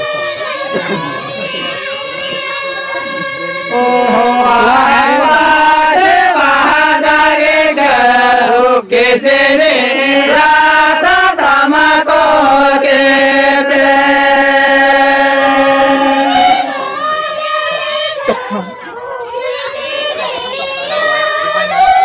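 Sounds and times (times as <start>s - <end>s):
men chanting together: 3.7s - 17.2s.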